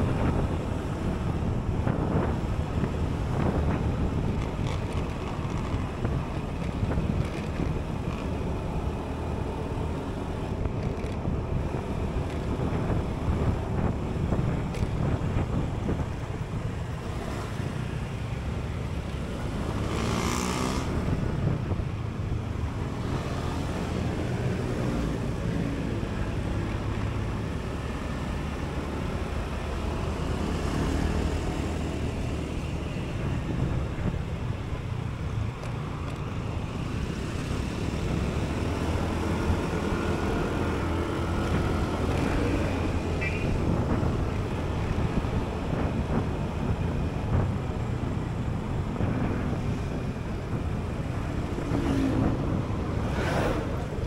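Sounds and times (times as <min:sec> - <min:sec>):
road and traffic noise: 0:00.0 - 0:54.0.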